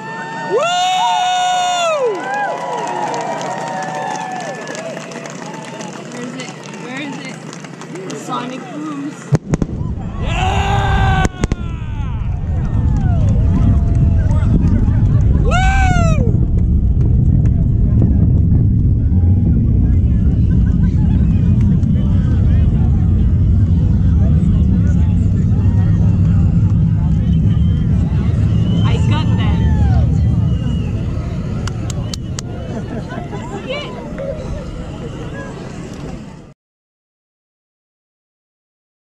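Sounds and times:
onlookers whooping: 0:00.0 - 0:06.8, 0:09.7 - 0:17.1, 0:24.8 - 0:36.0
distant rocket launch rumble: 0:01.0 - 0:36.5.

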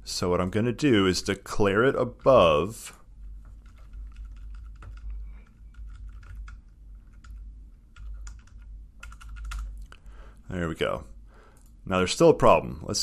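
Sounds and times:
low steady hum: 0:00.0 - 0:13.0
computer keyboard typing: 0:03.4 - 0:10.0.

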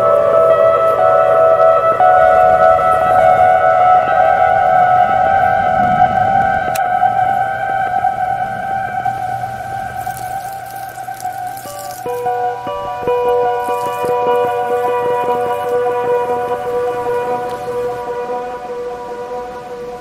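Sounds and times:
sustained music chord: 0:00.0 - 0:20.0.

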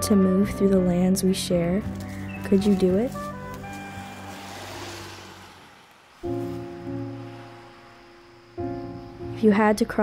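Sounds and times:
faint held music notes: 0:00.0 - 0:05.4
car passing: 0:02.0 - 0:09.0.

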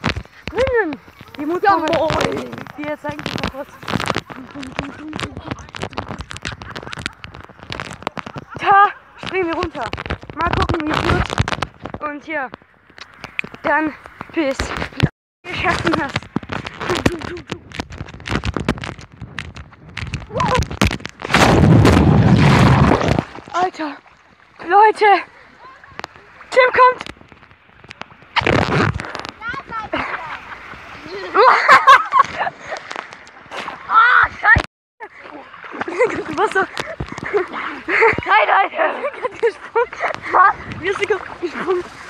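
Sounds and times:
knocks and rubbing on microphone: 0:00.0 - 0:23.5, 0:27.0 - 0:29.8
water splashes: 0:00.0 - 0:42.0
young people laughing and calling: 0:00.6 - 0:09.9, 0:16.8 - 0:17.7, 0:24.8 - 0:26.9, 0:29.4 - 0:42.0
loud splash into water: 0:20.8 - 0:24.3.

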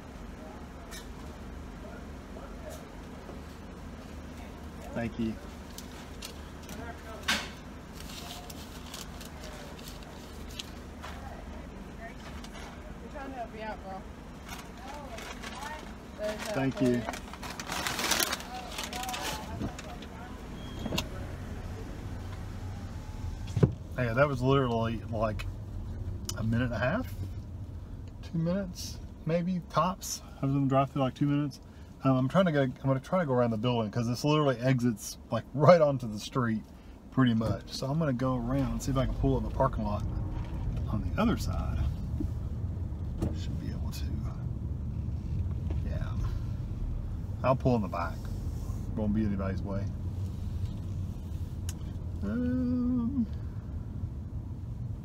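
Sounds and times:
car idling: 0:00.0 - 0:55.0
power window rolling up: 0:20.5 - 0:21.6, 0:22.2 - 0:23.8.

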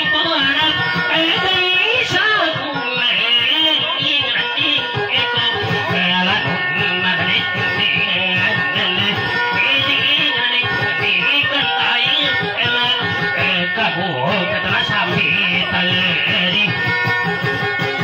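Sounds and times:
man singing: 0:00.0 - 0:17.8.

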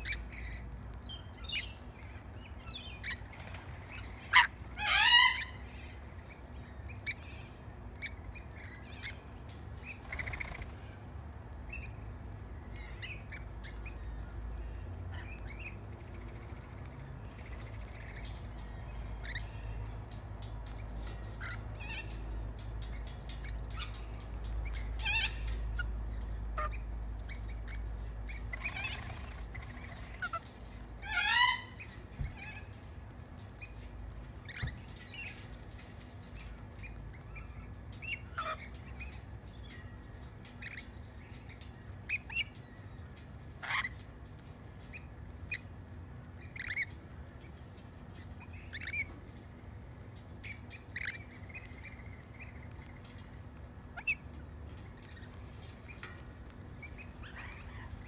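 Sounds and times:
lorikeets chirping and screeching: 0:00.0 - 0:58.0.

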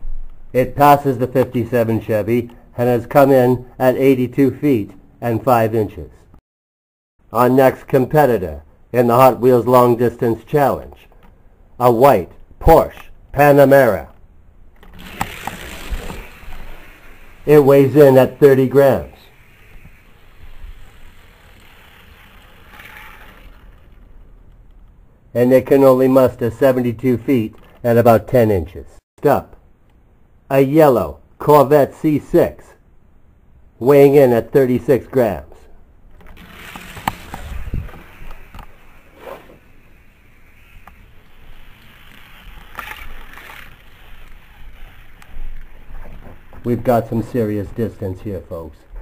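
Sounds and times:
toy car rolling on plastic track: 0:14.8 - 0:24.5, 0:36.2 - 0:47.9.

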